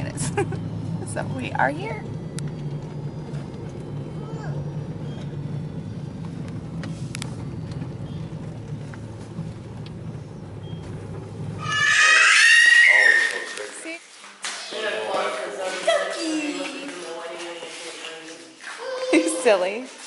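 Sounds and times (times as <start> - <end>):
car cabin engine and road rumble: 0.0 - 12.2
high-pitched vocal squeal: 11.6 - 13.8.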